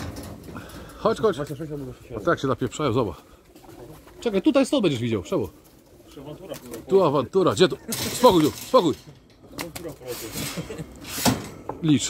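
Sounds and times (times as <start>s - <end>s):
pigeons scuffling: 0.0s - 7.2s
pigeons cooing: 3.1s - 4.8s.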